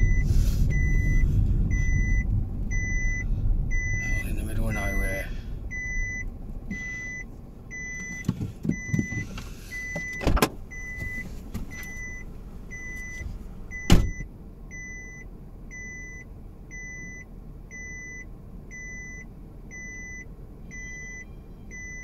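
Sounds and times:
seatbelt warning chime beeping: 0.0 - 22.0
car door opening and shutting: 6.7 - 14.3.

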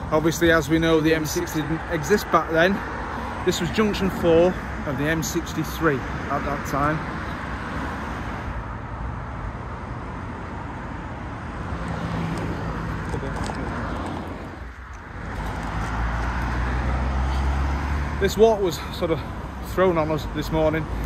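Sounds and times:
road traffic: 0.0 - 21.0.

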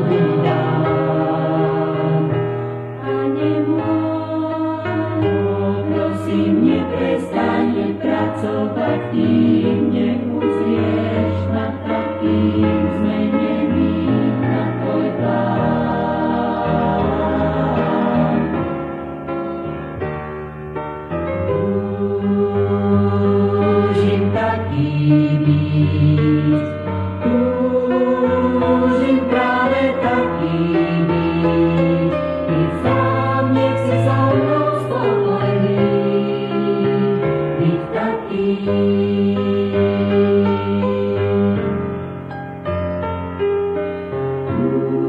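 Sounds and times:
mixed choir singing: 0.0 - 18.9, 21.4 - 41.8, 44.4 - 45.0.

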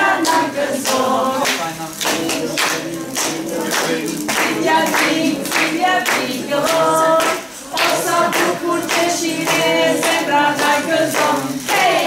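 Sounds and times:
children and adults singing: 0.0 - 12.0
clapping in time: 0.2 - 12.0.

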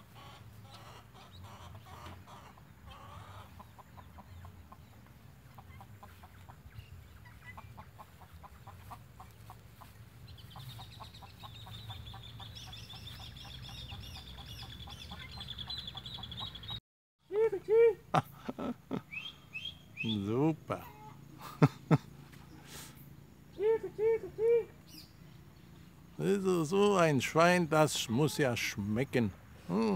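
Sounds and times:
hens clucking: 0.0 - 16.7, 20.2 - 25.0, 26.0 - 28.9.

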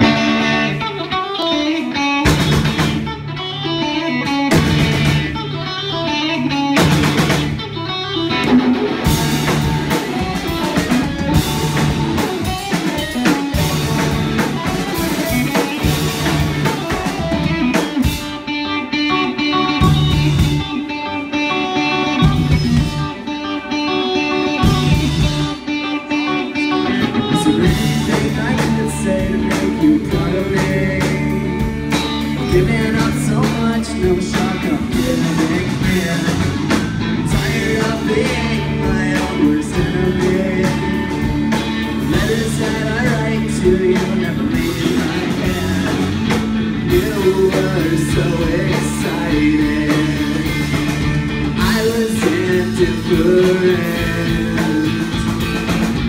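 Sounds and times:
rock band playing live: 0.0 - 56.0.

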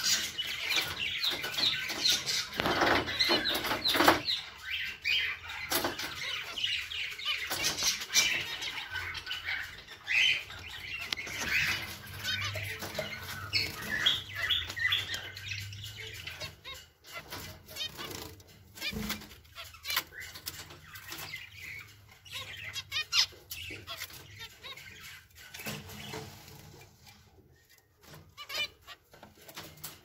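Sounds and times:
finches chirping: 0.0 - 29.8.

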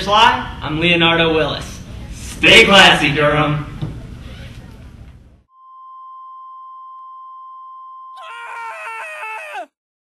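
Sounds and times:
electronic test tone: 5.5 - 8.2
high wavering vocal cry: 8.2 - 9.8.

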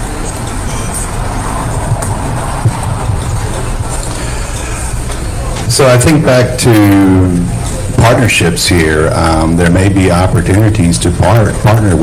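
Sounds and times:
faint murmur: 0.0 - 12.0
low room rumble: 0.0 - 12.0.

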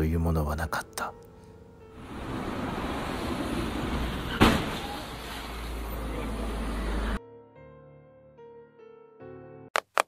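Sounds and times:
vehicle rumble: 2.0 - 7.2.

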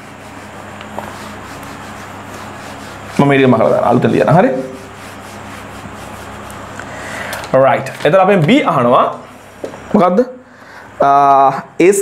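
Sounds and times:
eraser wiping whiteboard: 0.0 - 7.0
person speaking: 2.8 - 5.4, 7.5 - 10.4.

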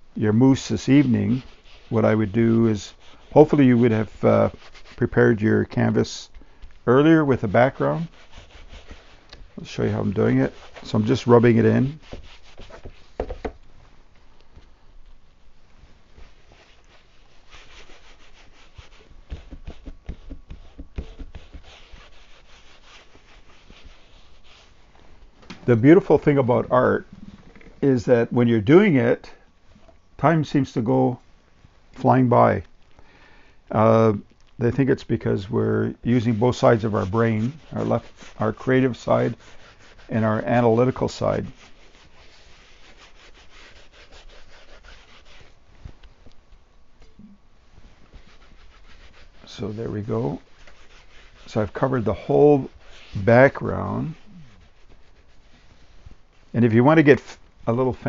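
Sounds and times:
paper towel scrubbing canvas: 0.5 - 6.1, 6.9 - 13.6, 15.2 - 28.4, 34.8 - 46.0, 47.7 - 58.0.

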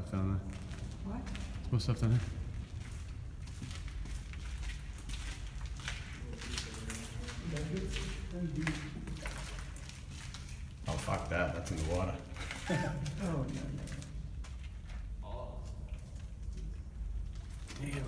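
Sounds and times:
steady low rumble: 0.0 - 12.4
footstep scuffs: 0.4 - 15.2.

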